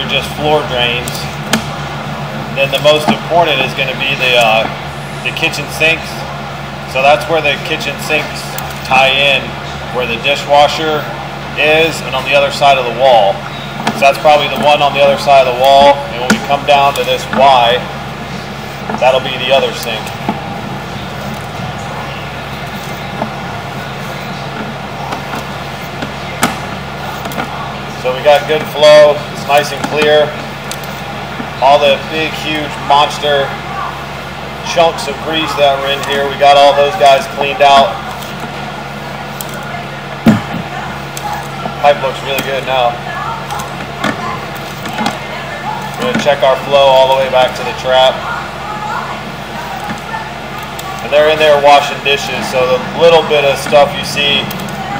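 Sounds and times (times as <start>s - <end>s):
faint indistinct voices: 0.0s - 54.9s
low mechanical hum: 0.0s - 54.9s.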